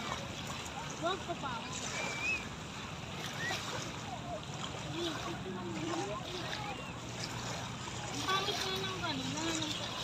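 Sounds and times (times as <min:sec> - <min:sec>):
waves lapping on pebbles: 0:00.0 - 0:10.0.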